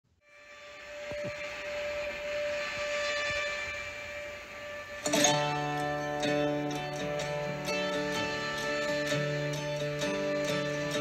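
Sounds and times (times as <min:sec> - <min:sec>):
droning hum with held tone: 0:00.1 - 0:11.0.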